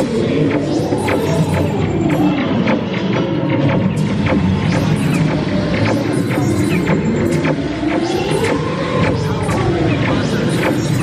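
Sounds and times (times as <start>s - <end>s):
electronic soundtrack music: 0.0s - 11.0s
rapid laser zaps and clicks: 0.0s - 11.0s.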